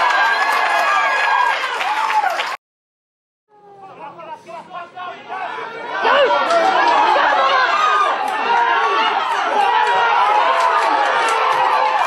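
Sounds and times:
crowd shouting and chattering: 3.5s - 12.0s.

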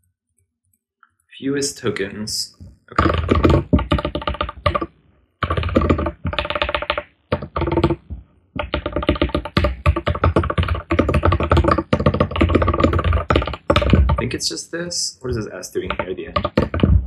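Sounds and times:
rapid typing on keyboard: 2.9s - 14.6s, 15.2s - 17.0s.

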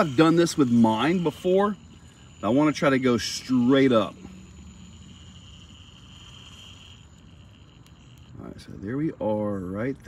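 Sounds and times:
electric motors whining: 0.0s - 9.7s.

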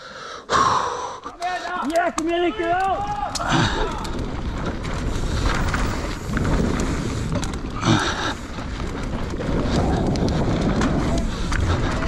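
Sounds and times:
bike rattling: 1.3s - 12.0s
bike tyres rolling over dirt: 1.3s - 12.0s
wind rushing over microphone: 3.2s - 12.0s.

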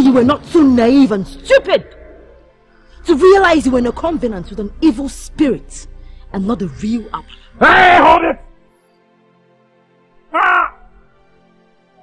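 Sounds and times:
background music drone: 0.0s - 12.0s
short loud cry: 10.3s - 10.9s.

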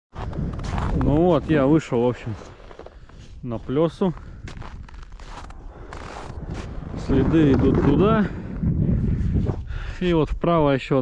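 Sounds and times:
footsteps in snow: 0.1s - 9.7s
low wind rumble on microphone: 0.1s - 10.8s.

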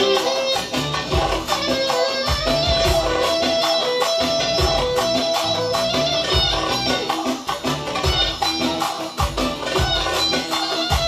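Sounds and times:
loud band music: 0.0s - 11.0s
steady drum beat: 0.0s - 11.0s.

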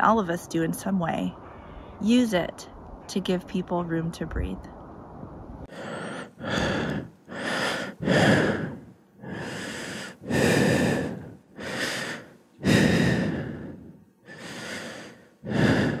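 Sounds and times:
person breathing deeply: 1.4s - 2.0s, 5.6s - 16.0s.

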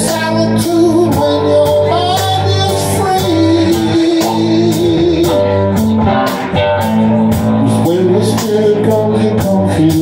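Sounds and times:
drums with cymbal hits: 0.0s - 10.0s
electric guitar line: 0.0s - 10.0s
keyboard chords: 0.0s - 10.0s.

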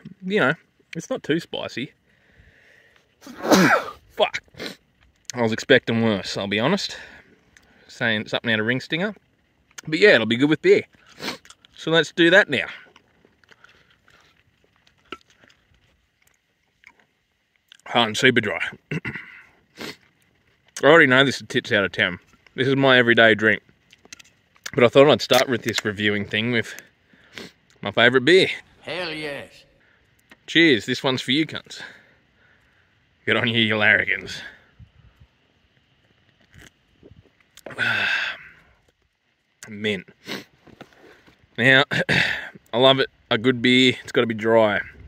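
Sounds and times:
soft rush of noise: 25.1s - 36.0s.

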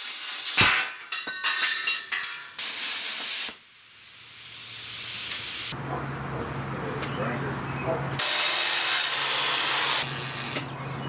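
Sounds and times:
plasma cutter hissing and crackling: 0.0s - 1.2s, 2.1s - 5.8s, 8.2s - 10.7s
quieter hiss: 0.0s - 5.8s.

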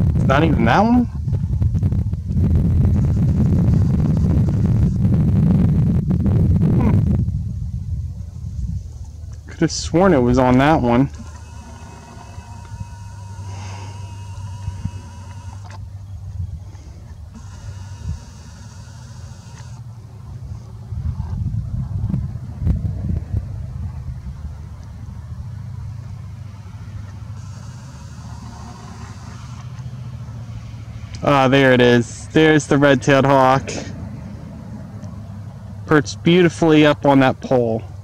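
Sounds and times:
road traffic rumble: 0.0s - 38.0s.

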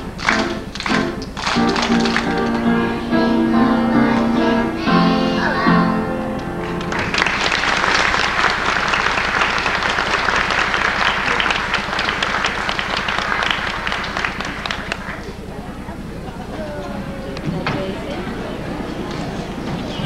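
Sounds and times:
audience applauding: 0.0s - 3.0s, 6.6s - 15.5s
song ending: 0.0s - 7.0s.

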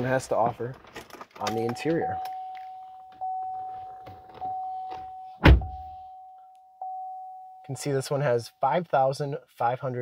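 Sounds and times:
car warning chime dinging: 1.5s - 7.9s
heavy thump: 5.4s - 5.9s.

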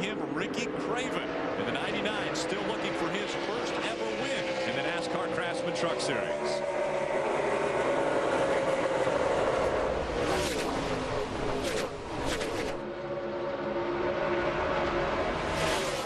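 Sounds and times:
race truck engines at full throttle: 0.0s - 16.0s
trucks passing close by: 0.0s - 16.0s.

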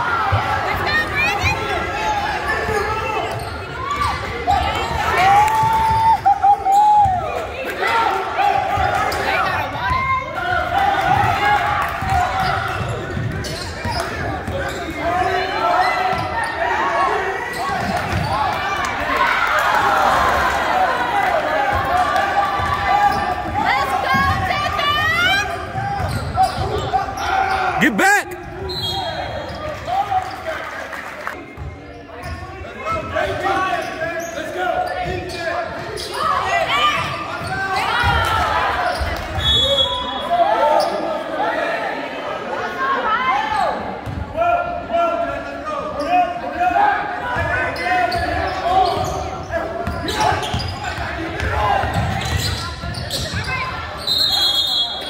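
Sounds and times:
chatter and calls of people: 0.0s - 55.0s
shoe squeaks: 13.4s - 15.0s.

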